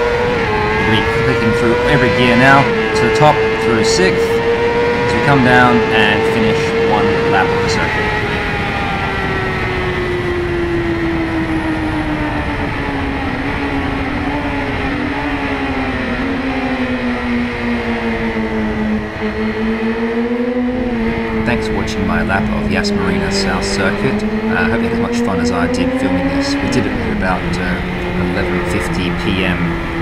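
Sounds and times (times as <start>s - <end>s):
motorcycle engine: 0.0s - 30.0s.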